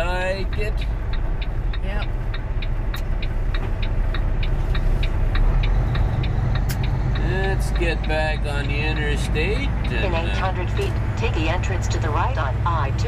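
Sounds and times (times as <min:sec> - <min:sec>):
diesel truck engine running: 0:00.0 - 0:13.0
turn signal ticking: 0:00.0 - 0:13.0.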